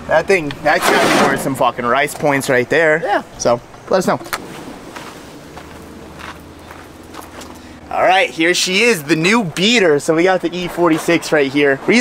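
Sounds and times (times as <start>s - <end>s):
footsteps shuffling on gravel: 4.4s - 7.8s.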